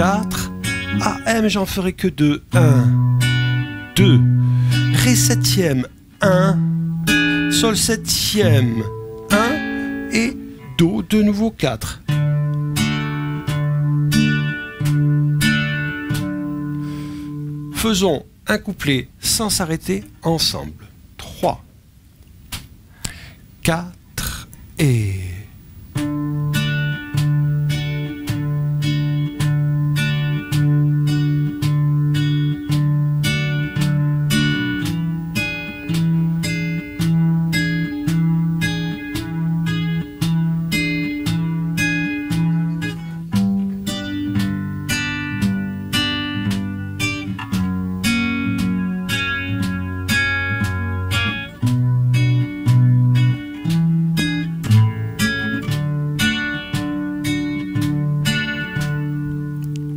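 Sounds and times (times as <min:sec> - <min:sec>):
nylon-string guitar strumming: 0:00.0 - 0:18.4, 0:25.9 - 0:59.9.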